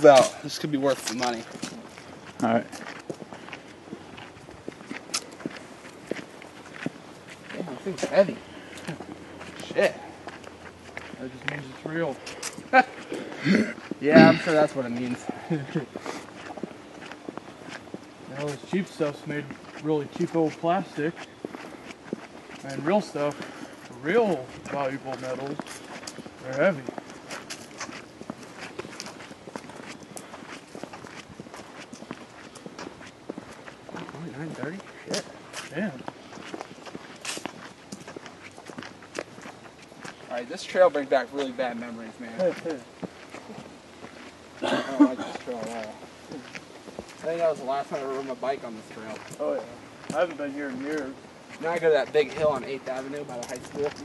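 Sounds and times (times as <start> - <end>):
footsteps on forest trail: 0.0 - 54.0.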